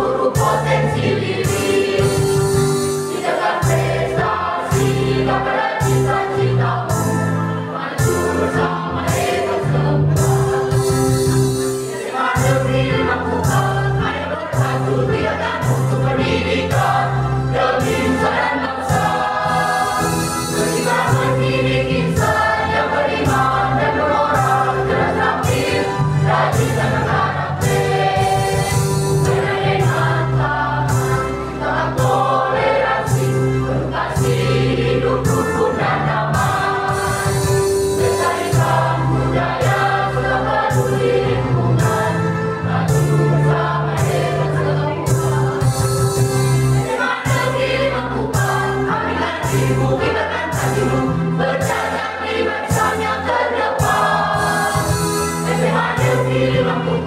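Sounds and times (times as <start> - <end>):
children's choir singing: 0.0 - 57.0.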